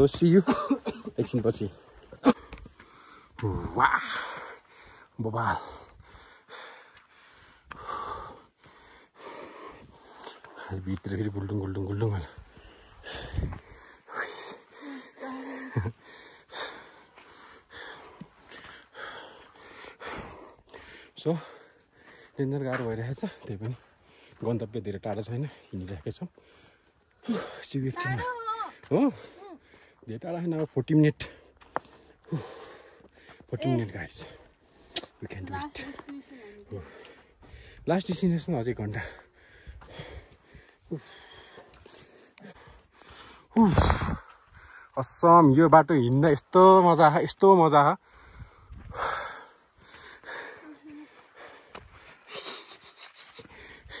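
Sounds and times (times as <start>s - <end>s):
person breathing hard: 1.9s - 10.7s, 12.3s - 22.4s, 36.4s - 37.8s, 39.0s - 45.0s, 48.0s - 54.0s.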